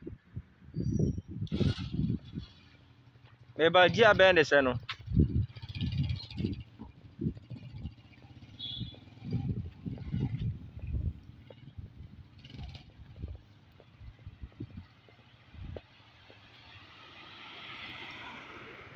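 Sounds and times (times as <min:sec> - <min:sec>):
wind buffeting microphone: 0:00.0 - 0:02.7, 0:03.9 - 0:08.2, 0:08.8 - 0:15.9
motorcycle engine pulling away: 0:01.5 - 0:18.9.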